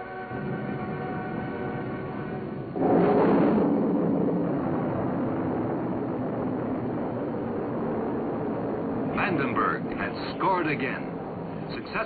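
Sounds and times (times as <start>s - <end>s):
rocket engines roaring at liftoff: 0.0s - 12.0s.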